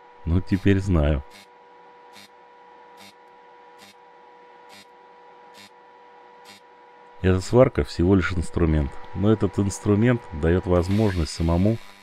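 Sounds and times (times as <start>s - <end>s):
faint welder hum: 0.0s - 12.0s.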